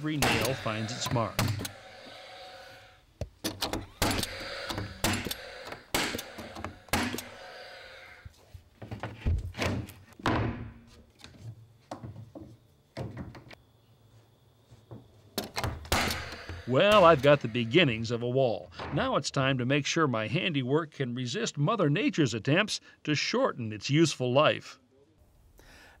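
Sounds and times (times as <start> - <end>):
nail gun firing: 0.2 - 1.7, 3.4 - 7.4, 15.5 - 17.4.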